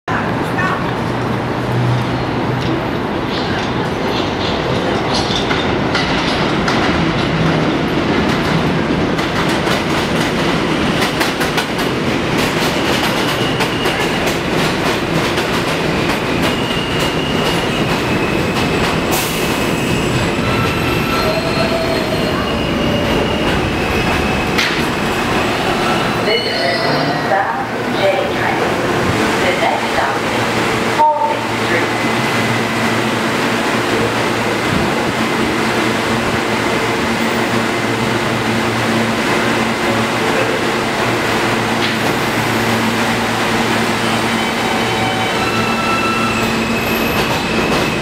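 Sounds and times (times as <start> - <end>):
train wheels rumbling on rails: 0.1 - 26.3, 27.0 - 48.0
high-pitched brake squeals: 19.6 - 24.6, 44.4 - 48.0.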